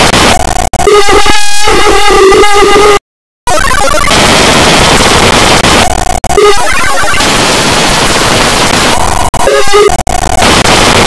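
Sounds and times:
heavily distorted noise: 0.0s - 1.0s, 3.5s - 11.0s
distorted pitched tone: 0.0s - 2.8s, 3.5s - 11.0s.

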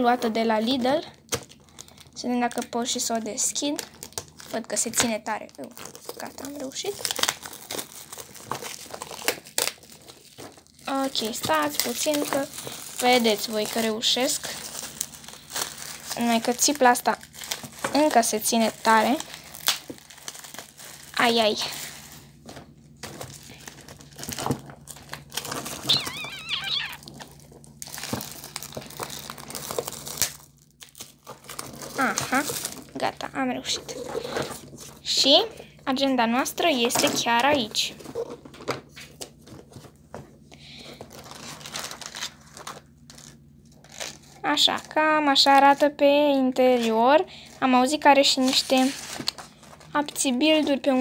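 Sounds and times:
plastic shrink wrap crinkling: 0.0s - 51.0s
wavering high voice-like sound: 25.9s - 27.0s.

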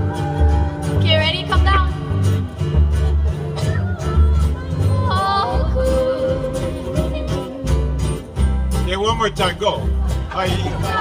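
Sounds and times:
string band playing: 0.0s - 11.0s.

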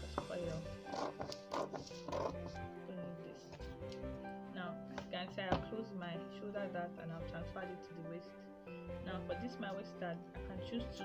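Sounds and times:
background music with held notes: 0.0s - 11.0s
paper crackling: 0.8s - 2.6s.

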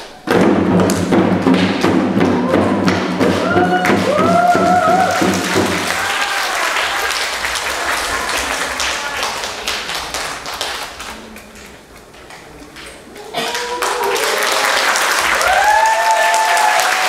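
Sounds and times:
drum strokes: 0.0s - 6.1s.

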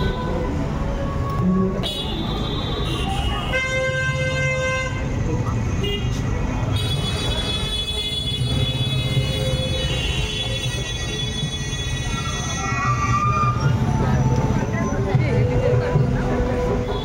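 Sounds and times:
crowd: 0.0s - 17.0s
traffic: 0.0s - 17.0s.

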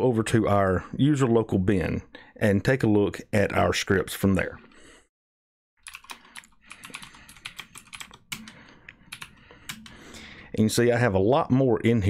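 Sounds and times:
typing on computer keyboard: 5.8s - 10.0s.

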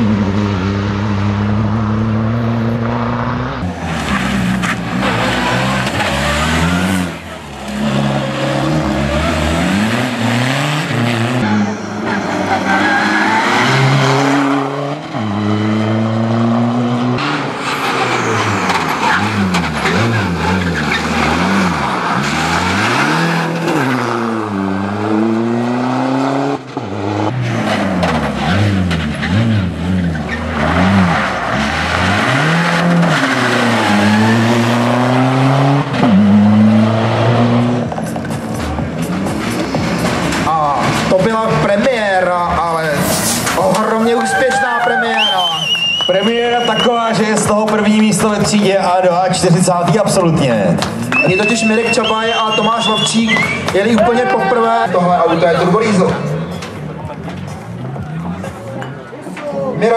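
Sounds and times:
rally car engine revving: 0.0s - 44.2s, 45.2s - 59.9s.

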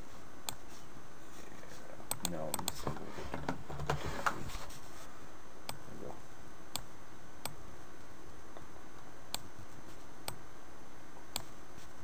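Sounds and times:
computer mouse and keyboard clicks: 2.1s - 3.0s.

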